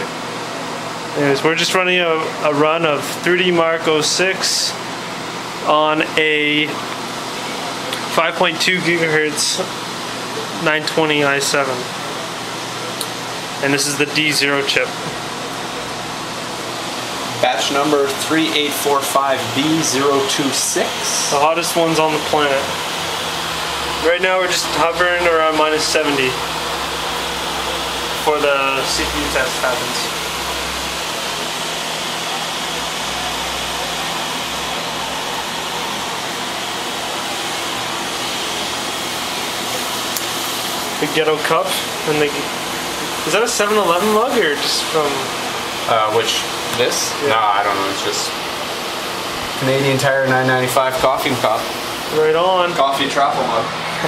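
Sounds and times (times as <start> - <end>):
computer fans hissing: 0.0 - 54.0.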